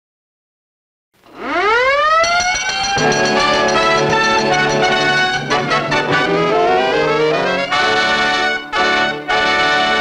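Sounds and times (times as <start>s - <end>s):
siren wailing: 1.3s - 8.0s
brass band fanfare: 3.0s - 10.0s.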